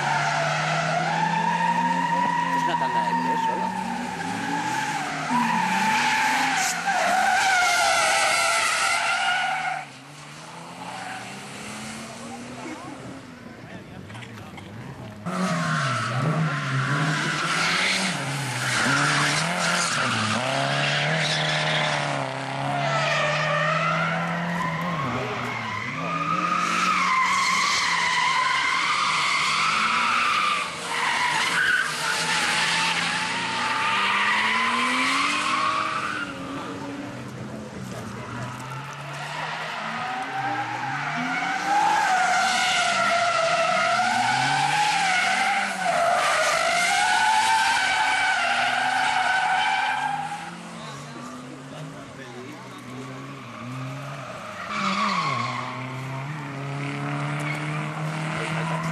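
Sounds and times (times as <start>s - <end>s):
car engines revving: 0.0s - 58.9s.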